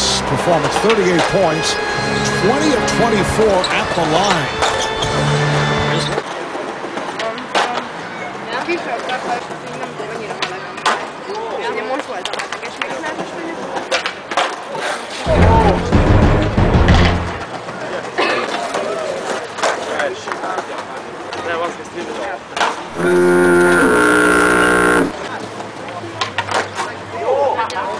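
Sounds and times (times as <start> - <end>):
skateboards clacking on ground: 11.9 - 15.2.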